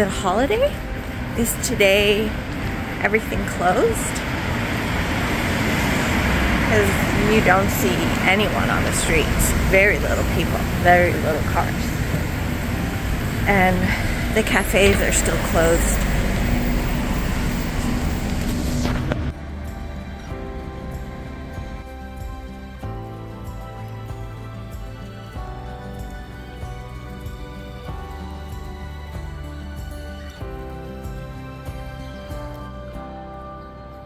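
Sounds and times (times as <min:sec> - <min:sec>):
held engine-like tone: 0:00.0 - 0:22.3
car passing: 0:00.0 - 0:25.3
street traffic rumble: 0:00.0 - 0:33.0
soft background music: 0:00.0 - 0:34.0.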